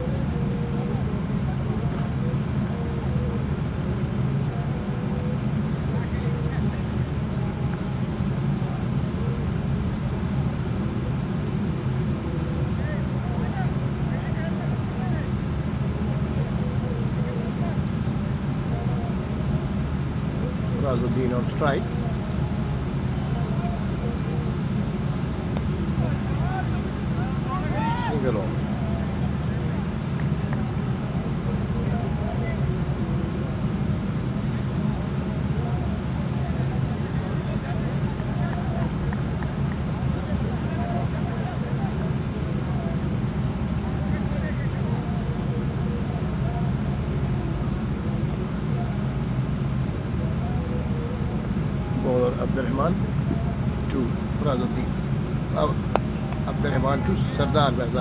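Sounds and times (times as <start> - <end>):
low outdoor rumble: 0.0 - 58.0.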